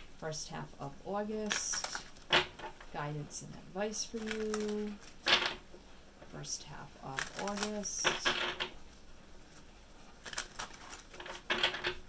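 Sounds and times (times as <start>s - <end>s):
cards being shuffled: 1.4s - 2.8s, 4.0s - 5.6s, 7.1s - 8.7s, 9.4s - 12.0s.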